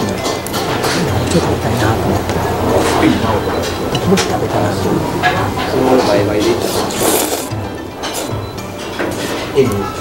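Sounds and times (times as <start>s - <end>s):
indistinct diners' voices: 0.0s - 10.0s.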